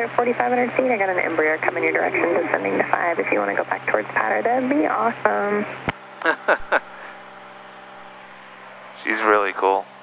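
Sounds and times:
light airplane piston engine drone: 0.0s - 10.0s
person laughing: 6.2s - 7.2s.

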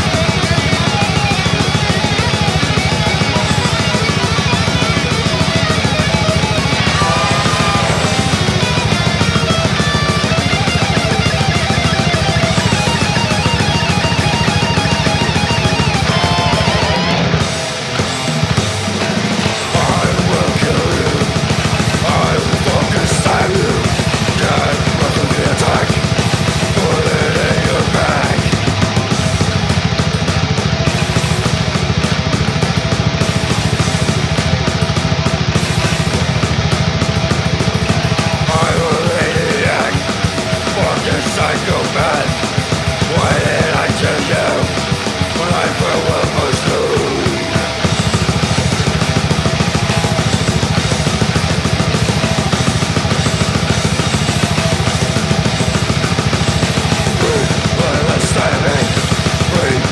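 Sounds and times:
death metal music: 0.0s - 59.9s
fast drumming: 0.0s - 59.9s
heavily distorted guitars: 0.0s - 59.9s.

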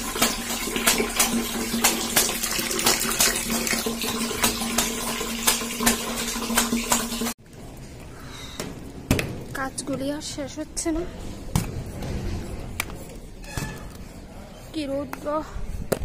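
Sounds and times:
running water: 0.0s - 7.4s
water splashing in a tub: 0.0s - 7.4s.

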